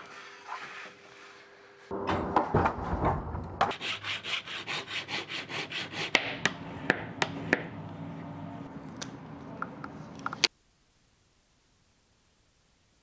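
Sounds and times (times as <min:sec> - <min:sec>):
file scraping metal plate: 0:03.7 - 0:06.9.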